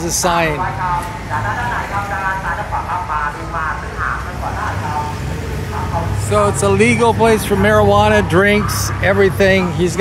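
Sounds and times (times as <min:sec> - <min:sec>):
people talking indistinctly: 0:00.0 - 0:10.0
traffic engine rumble: 0:00.0 - 0:10.0.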